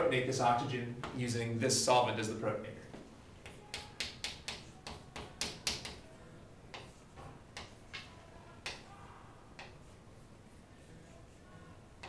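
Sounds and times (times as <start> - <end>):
chalk tapping and scraping on chalkboard: 3.4 - 8.9, 9.5 - 12.0.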